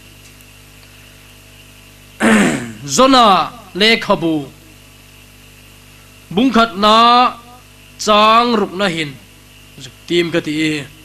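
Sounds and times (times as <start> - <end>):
man clearing his throat: 2.2 - 2.9.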